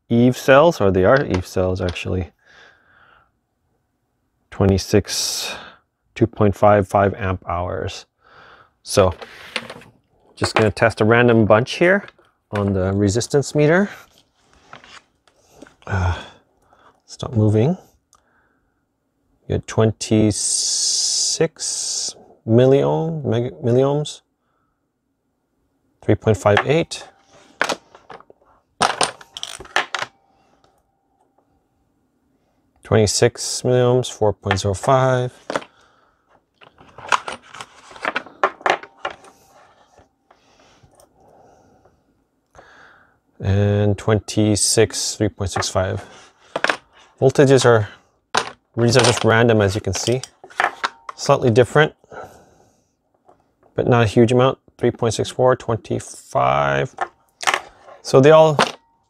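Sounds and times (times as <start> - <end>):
rustling and handling noise: 8.9 - 15.9, 26.3 - 31.6, 34.4 - 41.2, 45.4 - 51.6, 56.0 - 59.0
battery cells clattering: 27.5 - 30.1
clip leads clicking and rustling: 27.6 - 30.2.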